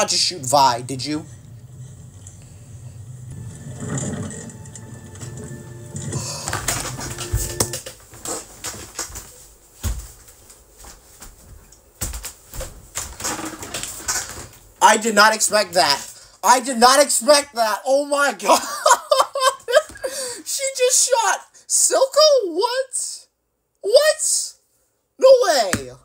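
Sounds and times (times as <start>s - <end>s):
low music drone: 1.3s - 7.8s.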